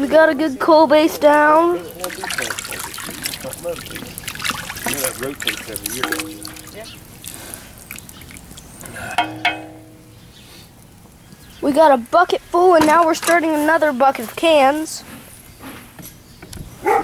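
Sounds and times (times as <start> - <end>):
faint voices: 0.0 - 9.4
paddle stirring thick liquid: 1.3 - 11.0.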